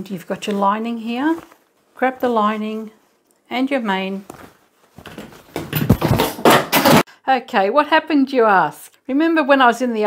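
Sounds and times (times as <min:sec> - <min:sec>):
tripod clattering to the floor: 0:05.0 - 0:07.0.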